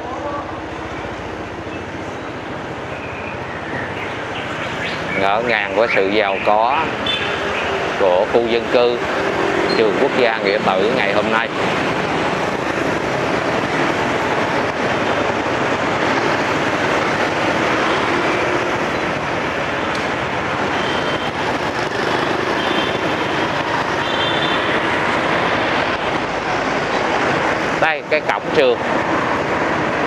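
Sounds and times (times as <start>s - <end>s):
motorbike and car engines: 0.0s - 30.0s
road and wind rush: 0.0s - 30.0s.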